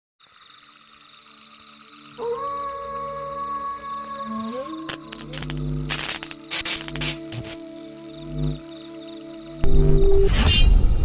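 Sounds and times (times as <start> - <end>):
high electronic chirps: 4.9 - 10.2.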